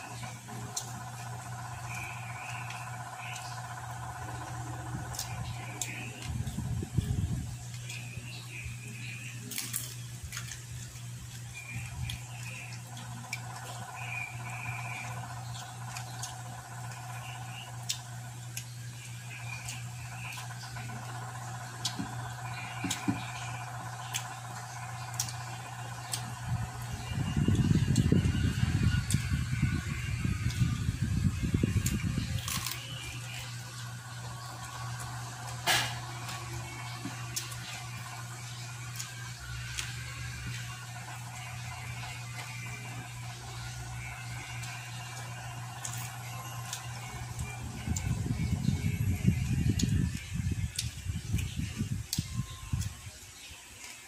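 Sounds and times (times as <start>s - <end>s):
chewing with crunches: 0.0s - 54.0s
steady low hum: 0.0s - 54.0s.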